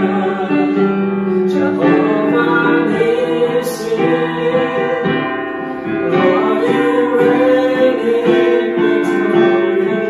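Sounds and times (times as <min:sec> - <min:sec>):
digital keyboard: 0:00.0 - 0:10.0
man and woman singing: 0:00.0 - 0:10.0.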